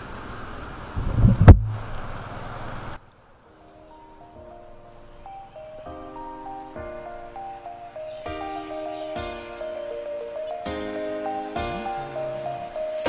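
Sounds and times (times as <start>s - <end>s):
wind on microphone: 1.0s - 2.2s
soft keyboard music: 3.4s - 13.0s.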